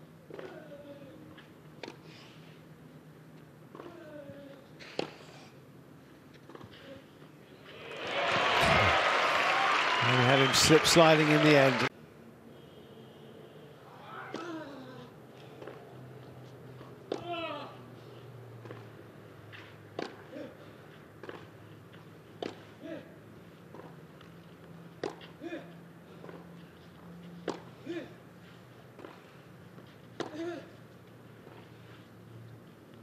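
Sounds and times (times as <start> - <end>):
low stadium hum: 0.0 - 33.0
racket striking tennis ball: 17.1 - 17.4, 19.9 - 20.3, 22.4 - 22.7, 25.0 - 25.4, 27.4 - 27.7, 30.2 - 30.5.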